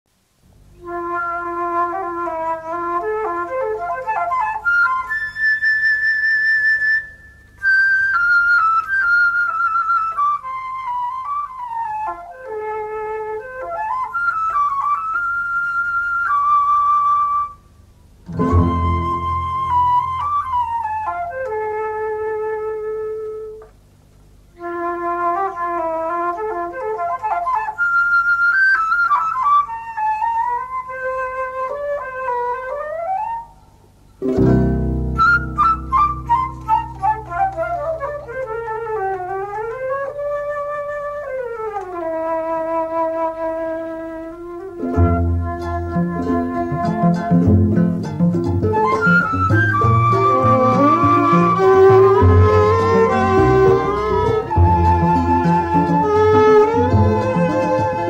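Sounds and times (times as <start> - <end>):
flute melody: 0.7 - 23.7, 24.5 - 58.0
ensemble playing: 9.4 - 23.7, 34.2 - 58.0.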